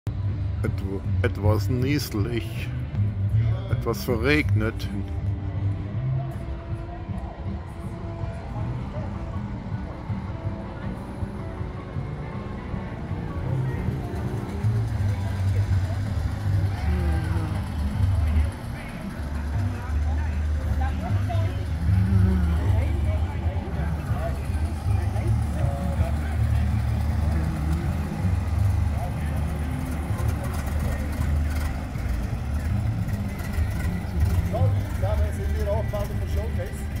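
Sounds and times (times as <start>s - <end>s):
car engines rumbling: 0.0s - 37.0s
background music: 0.1s - 37.0s
distant voices: 0.2s - 37.0s.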